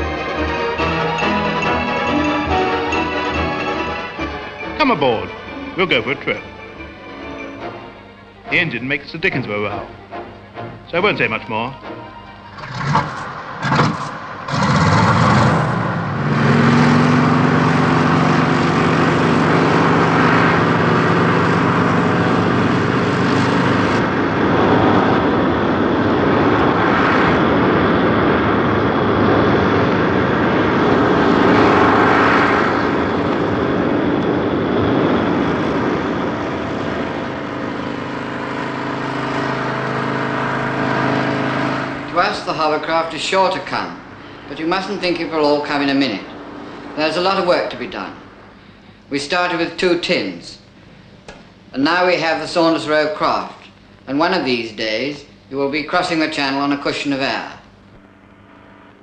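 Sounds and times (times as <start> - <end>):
hovercraft engine and lift fan: 0.0 - 49.9.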